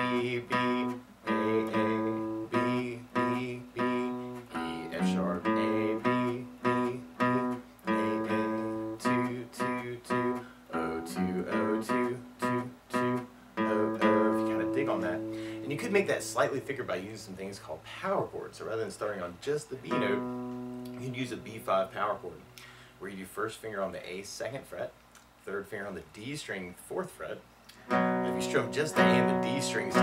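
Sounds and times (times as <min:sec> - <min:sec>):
acoustic guitar riff: 0:00.0 - 0:17.3, 0:19.8 - 0:22.4, 0:27.7 - 0:30.0.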